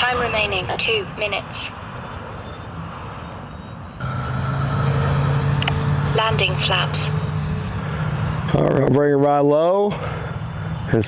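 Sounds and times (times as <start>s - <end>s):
electric ducted fans droning: 4.0s - 11.0s.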